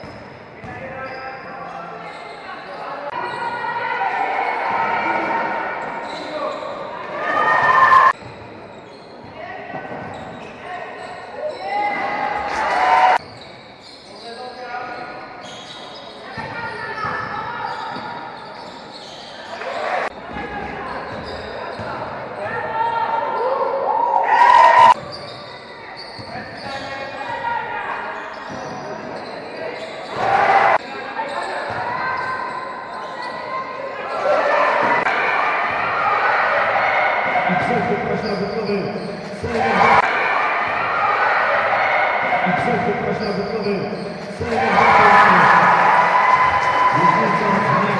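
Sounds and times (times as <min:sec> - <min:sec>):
basketball bouncing on court: 0:00.0 - 0:01.0
players calling out: 0:27.6 - 0:47.9.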